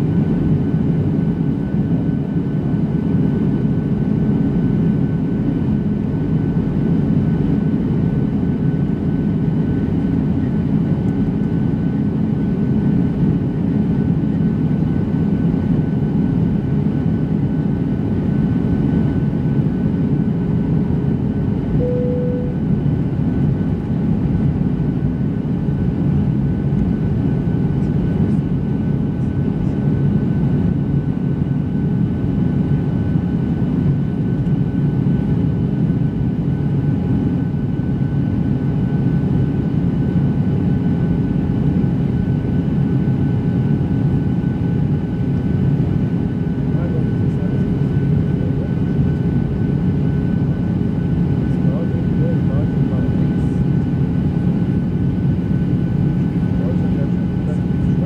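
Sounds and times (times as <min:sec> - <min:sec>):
jet engine and airflow rush: 0:00.0 - 0:58.0.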